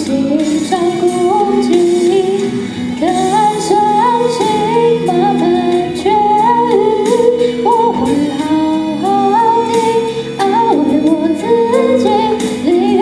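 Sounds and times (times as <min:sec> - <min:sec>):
instrumental accompaniment: 0:00.0 - 0:13.0
woman singing into microphone: 0:00.0 - 0:13.0.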